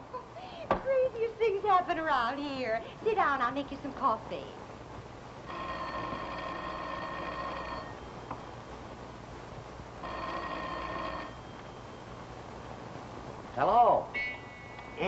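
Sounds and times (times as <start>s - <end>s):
telephone bell ringing: 5.5s - 8.4s, 10.0s - 12.0s.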